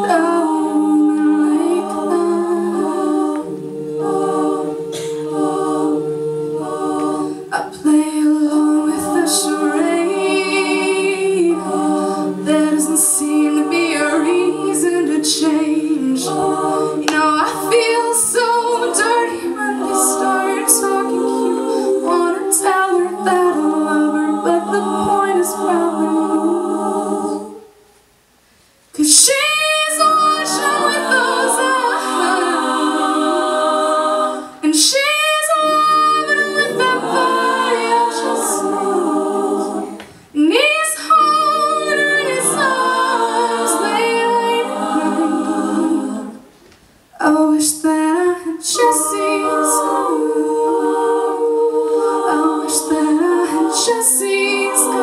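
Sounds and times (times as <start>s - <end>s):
women singing a cappella harmony: 0.0s - 27.9s, 29.0s - 55.0s.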